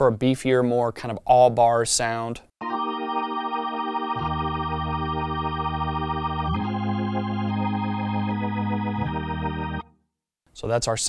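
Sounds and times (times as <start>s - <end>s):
organ sustained chords: 2.6s - 9.9s.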